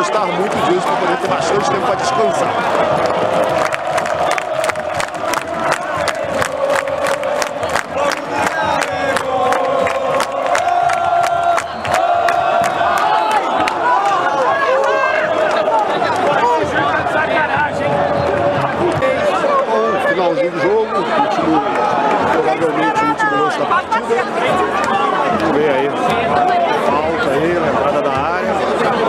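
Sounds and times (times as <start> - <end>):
crowd shouting: 0.0 - 29.0
football crowd singing a chant: 0.0 - 29.0
hand-clapping: 2.5 - 16.3.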